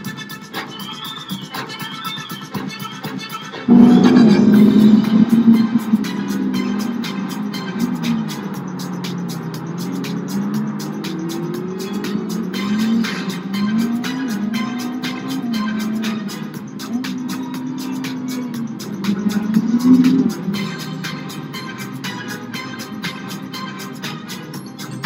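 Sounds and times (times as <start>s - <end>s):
background music with steady beat: 0.0s - 25.0s
sports car engine accelerating: 3.7s - 23.1s.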